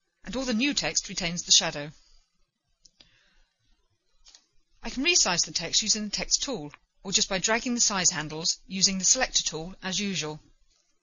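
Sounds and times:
faint keyboard clicks: 4.2 - 4.6.

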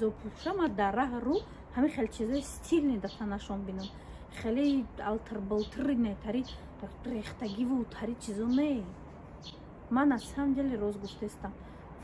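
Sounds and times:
woman talking: 0.0 - 9.1, 9.9 - 11.7.

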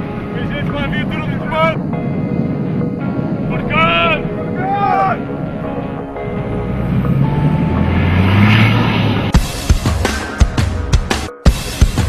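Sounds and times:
armoured vehicle engine droning: 0.0 - 10.3.

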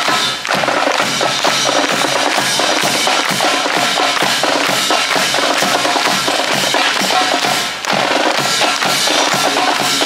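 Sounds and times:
marching drums: 0.0 - 10.0.

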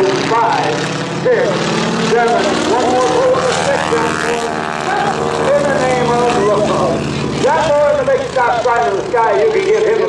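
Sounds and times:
biplane engine droning: 0.0 - 10.0
public-address voice: 0.0 - 10.0.

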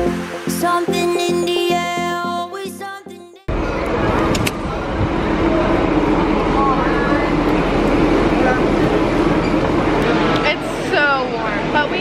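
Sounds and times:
loud steady rumbling: 3.5 - 12.0.

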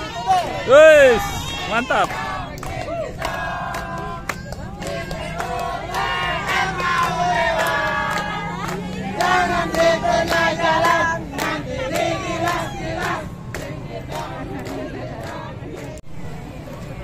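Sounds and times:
crowd chanting in unison: 0.0 - 17.0
hand claps: 1.7 - 16.0.

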